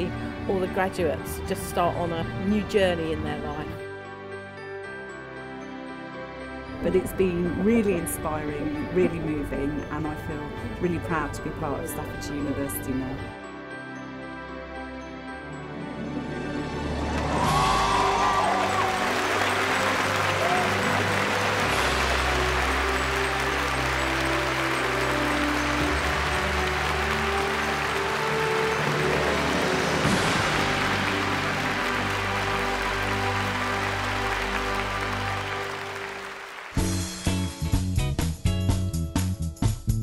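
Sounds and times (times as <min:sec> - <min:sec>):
background music: 0:00.0 - 0:40.0
audience applauding and cheering: 0:16.8 - 0:37.2
whoops: 0:17.2 - 0:21.3.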